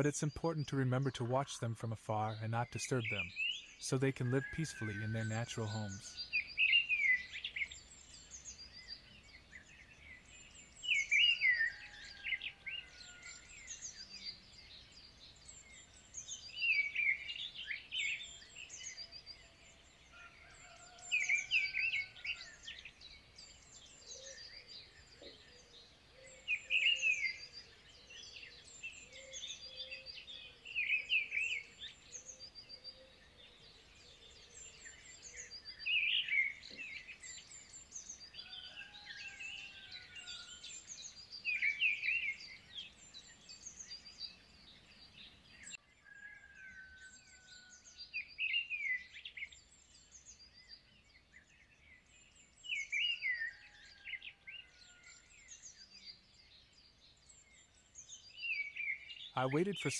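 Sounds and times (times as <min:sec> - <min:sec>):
songbird singing phrase: 0:00.0 - 0:59.9.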